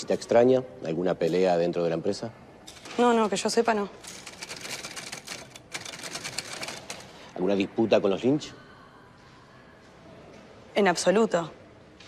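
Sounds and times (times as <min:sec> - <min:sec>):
manual typewriter typing: 0:04.0 - 0:07.2.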